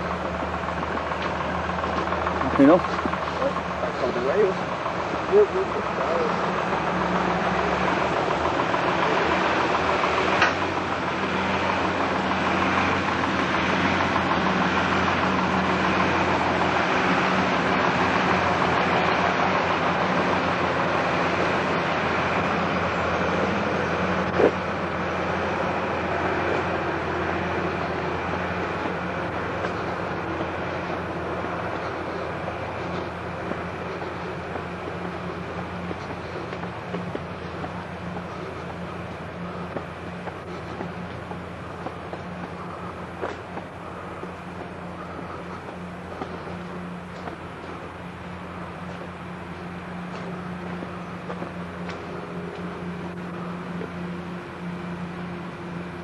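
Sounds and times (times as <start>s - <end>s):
train running noise: 0.0s - 56.0s.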